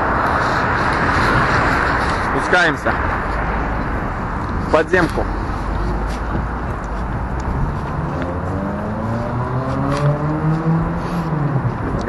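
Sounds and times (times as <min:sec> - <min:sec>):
low traffic rumble: 0:00.0 - 0:12.0
vehicle engine accelerating: 0:05.4 - 0:12.0.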